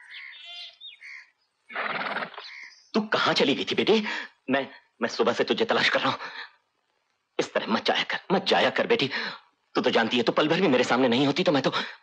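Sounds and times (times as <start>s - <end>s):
birds chirping: 0.0s - 3.8s.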